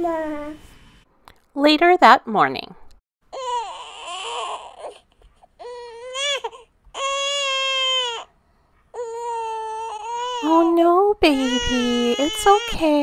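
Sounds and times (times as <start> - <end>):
infant crying: 3.3 - 8.3, 8.9 - 13.0.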